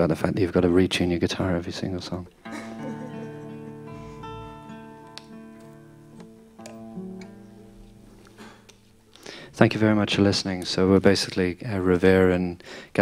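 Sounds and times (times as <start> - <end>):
acoustic guitar strings plucked: 2.4 - 9.3.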